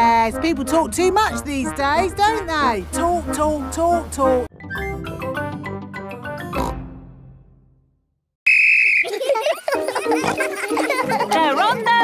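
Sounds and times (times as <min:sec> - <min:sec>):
police whistle blast: 0:08.5 - 0:09.1.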